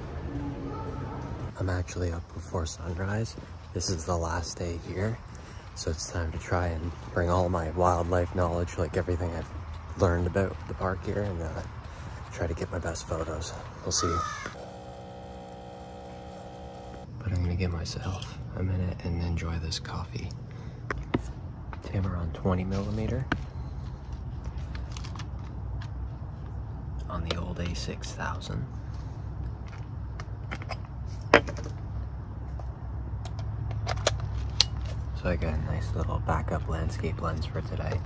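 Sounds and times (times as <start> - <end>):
coffee maker humming: 14.2 - 17.1.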